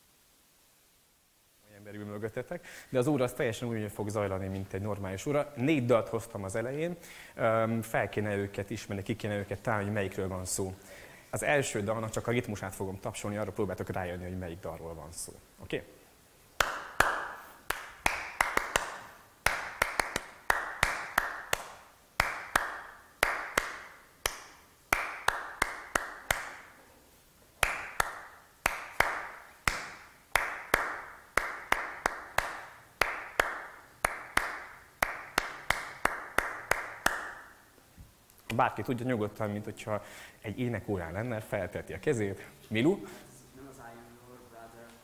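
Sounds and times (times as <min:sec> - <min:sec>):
hand claps beating a rhythm: 0:16.6 - 0:26.8, 0:27.6 - 0:37.6.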